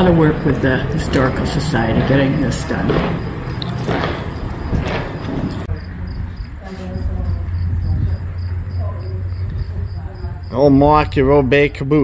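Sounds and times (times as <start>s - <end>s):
crickets chirping: 0.0s - 12.0s
steady low rumble: 0.0s - 12.0s.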